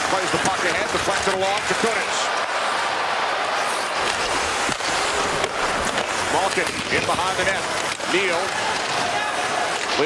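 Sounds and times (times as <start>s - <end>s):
skates scraping on ice: 0.0s - 2.3s, 3.6s - 10.0s
arena crowd noise: 0.0s - 10.0s.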